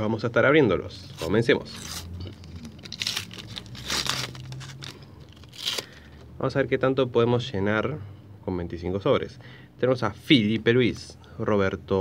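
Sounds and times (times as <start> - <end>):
sticker packet wrapper tearing: 1.2 - 6.1.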